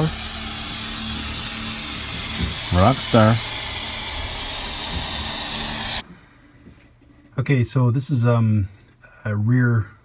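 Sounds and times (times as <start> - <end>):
machinery hum: 0.0 - 6.0.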